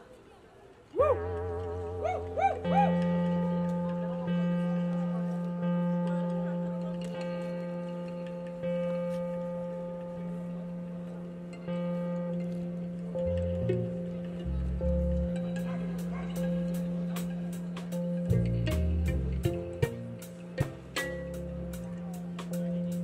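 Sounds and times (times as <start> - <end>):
synthesizer drone: 1.0 - 8.8.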